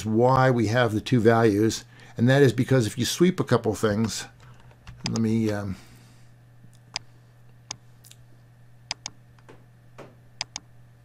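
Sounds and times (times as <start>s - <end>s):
low steady hum: 0.0s - 11.0s
computer mouse clicks: 4.6s - 5.3s, 8.9s - 9.5s, 10.4s - 10.7s.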